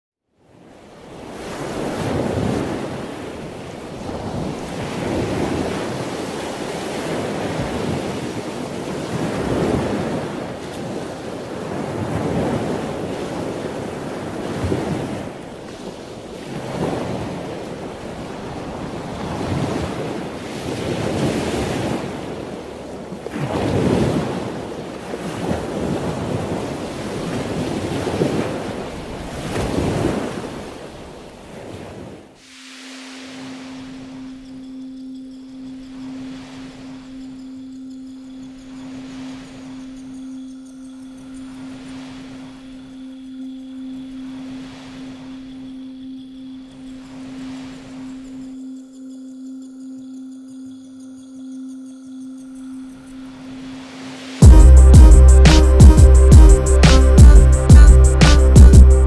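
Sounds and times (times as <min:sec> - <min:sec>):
wind noise: 0:00.5 - 0:32.2
waves breaking: 0:00.5 - 0:34.6, 0:38.6 - 0:45.8, 0:46.9 - 0:48.5.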